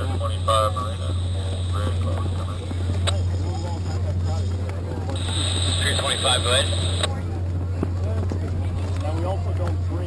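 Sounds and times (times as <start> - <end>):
faint distant voices: 0.0 - 10.0
low mechanical hum: 0.0 - 10.0.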